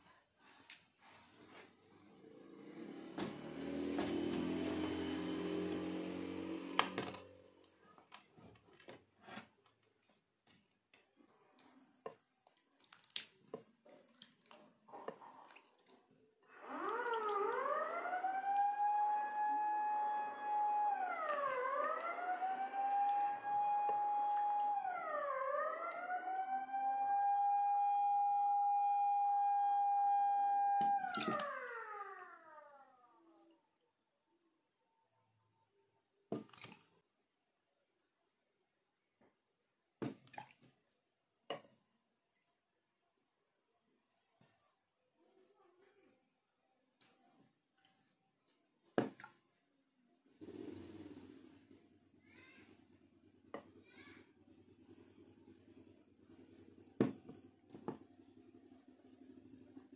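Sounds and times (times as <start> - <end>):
vehicle engine hum: 2.1 - 7.6
siren wailing: 16.5 - 33.5.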